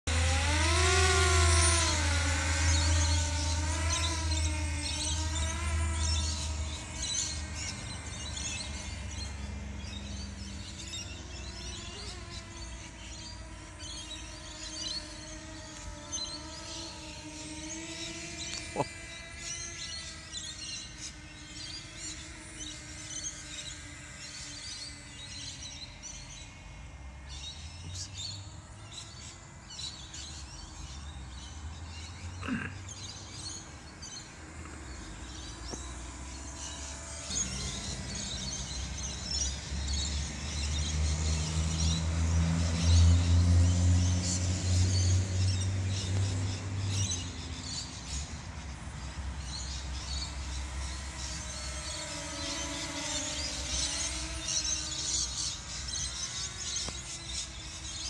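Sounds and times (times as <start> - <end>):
birds chirping: 0.0 - 58.0
quadcopter motors whining: 0.0 - 58.0.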